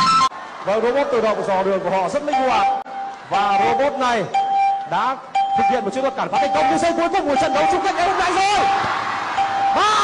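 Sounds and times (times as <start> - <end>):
bell-like electronic alert tone: 2.3 - 8.8, 9.4 - 10.0
fast speech: 5.0 - 8.7.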